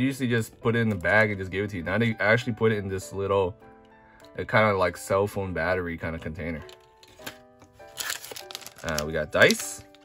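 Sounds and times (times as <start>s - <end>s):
background music with held notes: 0.0s - 10.0s
plastic bag crinkling: 6.7s - 10.0s.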